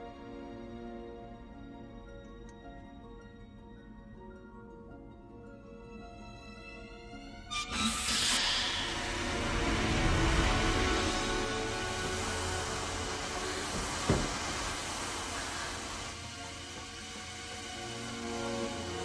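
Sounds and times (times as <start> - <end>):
film score music: 0.0 - 19.0
pressurised gas hissing: 7.5 - 19.0.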